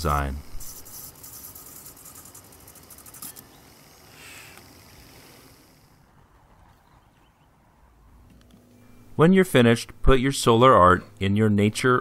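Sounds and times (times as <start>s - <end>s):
pen scratching on spinning paper: 0.6s - 5.8s.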